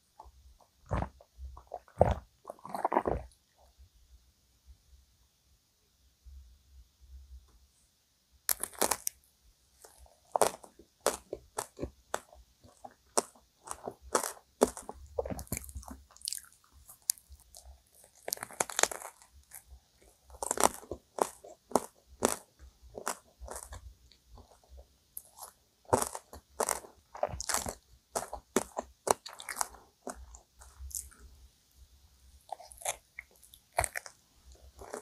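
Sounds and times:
crunchy biting and chewing: 0.8 - 3.4, 8.5 - 9.2, 9.8 - 31.2, 32.4 - 35.0.

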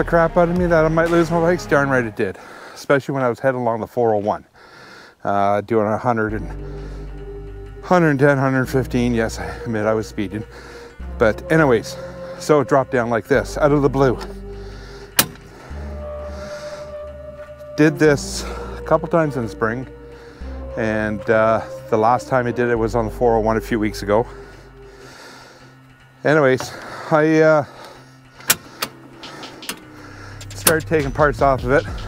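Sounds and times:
bike rack click: 15.2 - 15.5.

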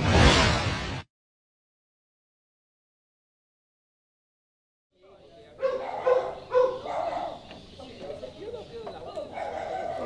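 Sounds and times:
dog barking: 5.6 - 7.5, 9.3 - 10.0.

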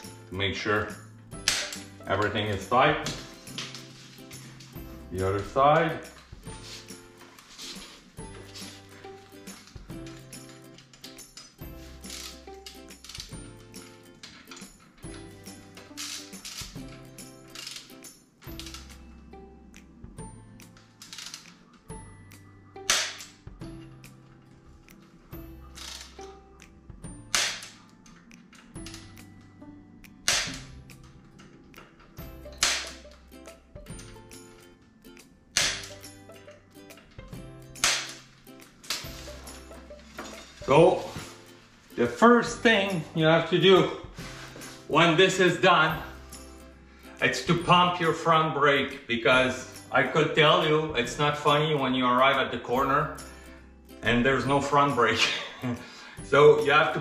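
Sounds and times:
background music with steady beat: 0.0 - 57.0
torque wrench clicks: 12.1 - 13.4, 17.4 - 19.0.

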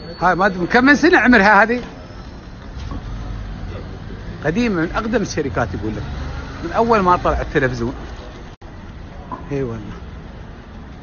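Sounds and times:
traffic rumble on wet street: 0.0 - 11.0.

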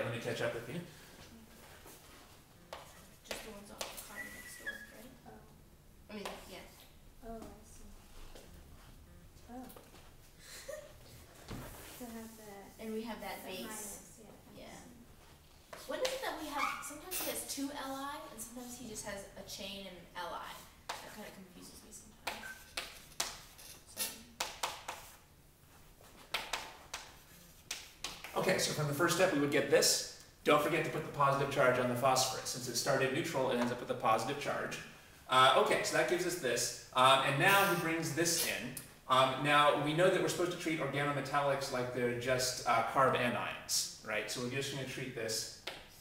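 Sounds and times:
chalk writing on chalkboard: 1.9 - 5.0, 20.5 - 21.4, 22.2 - 25.2
chalk squeaking on chalkboard: 4.0 - 5.1, 16.4 - 17.5, 22.2 - 25.2.

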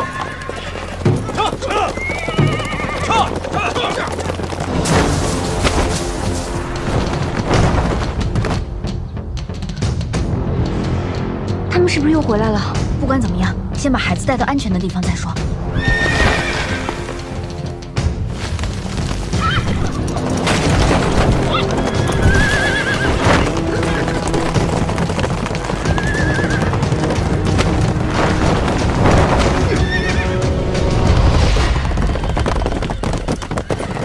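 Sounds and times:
horses whinnying: 0.0 - 4.6, 15.7 - 17.4, 19.3 - 20.4, 21.3 - 27.5, 29.3 - 30.5, 32.0 - 34.0
horse hoofbeats galloping: 0.0 - 9.9, 15.7 - 34.0
background music: 0.0 - 34.0.

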